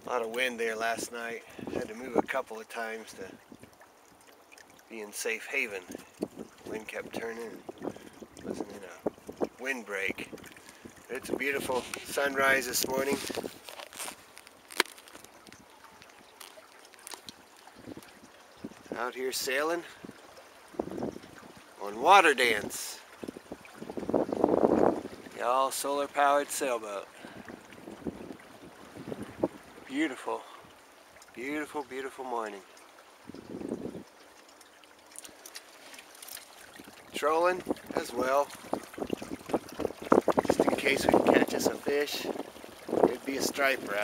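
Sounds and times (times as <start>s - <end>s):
water lapping against hull: 0.0s - 44.0s.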